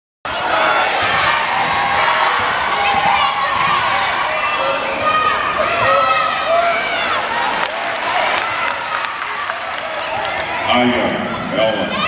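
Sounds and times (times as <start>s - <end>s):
crowd chattering and calling out: 0.3s - 12.0s.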